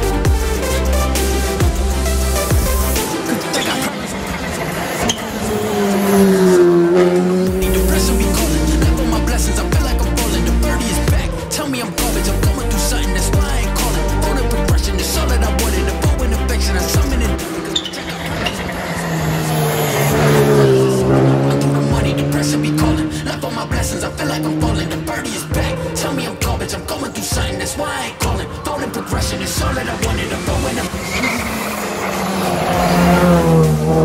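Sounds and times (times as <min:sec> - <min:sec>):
car engine passing by: 0:03.3 - 0:10.9, 0:16.7 - 0:27.2, 0:28.4 - 0:34.0.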